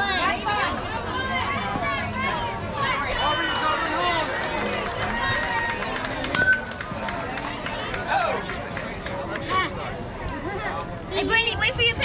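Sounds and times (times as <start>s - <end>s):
spectators and players calling out: 0.0s - 12.0s.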